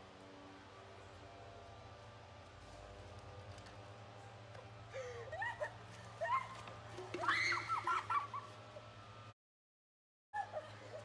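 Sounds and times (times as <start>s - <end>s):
girls shrieking: 5.2s - 8.3s.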